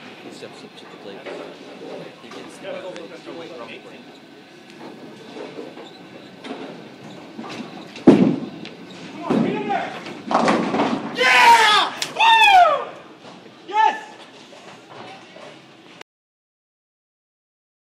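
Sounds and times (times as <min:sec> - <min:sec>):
bowling pins crashing: 0:06.5 - 0:11.6
bowling ball thud on wooden lane: 0:08.0 - 0:08.5, 0:10.3 - 0:11.1
people whooping and cheering: 0:11.1 - 0:13.0.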